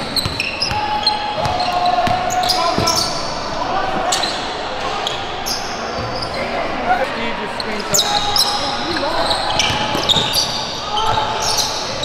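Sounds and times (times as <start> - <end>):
sneakers squeaking: 0.0 - 12.0.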